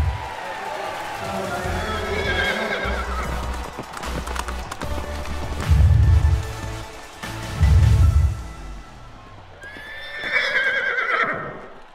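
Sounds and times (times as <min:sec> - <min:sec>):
clopping hoofbeats: 0:00.0 - 0:10.8
horse whinnying: 0:01.8 - 0:03.6, 0:09.6 - 0:11.7
logo music: 0:03.0 - 0:09.4.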